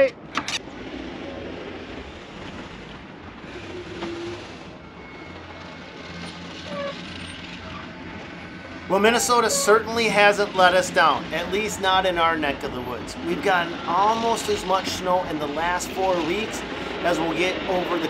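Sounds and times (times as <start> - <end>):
truck engine humming: 0.0 - 18.0.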